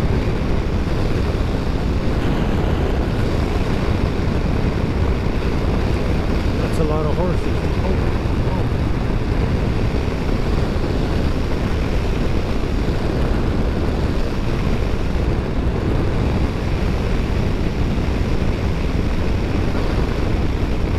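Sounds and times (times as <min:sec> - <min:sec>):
road noise: 0:00.0 - 0:20.9
wind rushing on microphone: 0:00.0 - 0:20.9.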